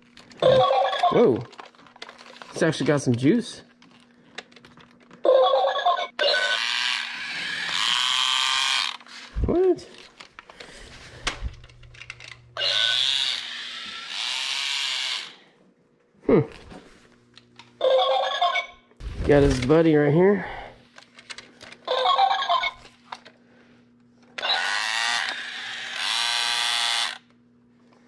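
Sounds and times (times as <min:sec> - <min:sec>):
toy robot electronic sound effects: 0:05.4 - 0:09.0, 0:12.6 - 0:15.4, 0:21.9 - 0:22.8, 0:24.4 - 0:27.2.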